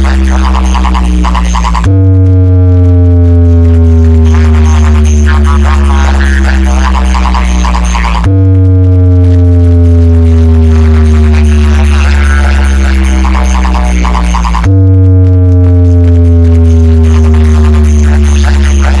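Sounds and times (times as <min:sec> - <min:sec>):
loud electronic music: 0:00.0 - 0:19.0.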